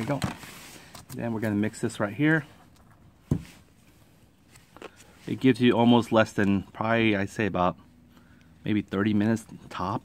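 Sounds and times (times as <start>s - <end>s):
dull thump: 3.2s - 3.6s.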